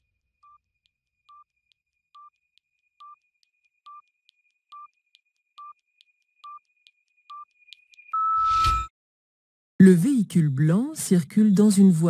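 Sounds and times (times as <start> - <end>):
timer beeps: 1.3 - 1.5, 2.1 - 2.4, 3.0 - 3.2, 3.8 - 4.1, 4.7 - 5.0, 5.6 - 5.8, 6.4 - 8.9.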